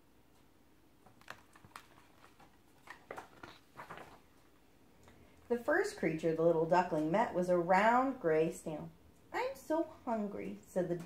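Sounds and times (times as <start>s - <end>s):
faint paper rustles and clicks: 0.4s - 5.4s
book pages turning: 1.0s - 4.6s.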